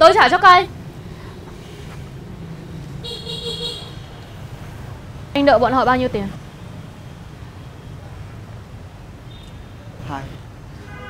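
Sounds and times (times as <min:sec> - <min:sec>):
street traffic rumble: 0:00.0 - 0:11.0
vehicle horn: 0:03.0 - 0:04.2, 0:10.8 - 0:11.0.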